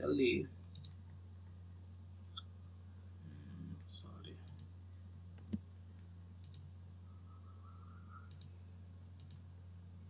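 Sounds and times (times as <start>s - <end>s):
steady low hum: 0.0s - 10.0s
mouse buttons clicking: 8.2s - 8.6s, 9.2s - 9.4s.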